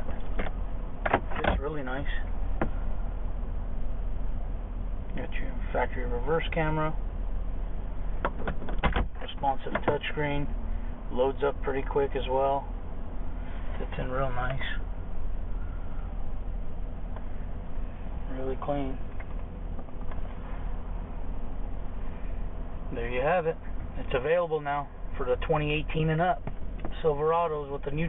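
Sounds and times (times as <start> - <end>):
truck engine idling: 0.0 - 28.0.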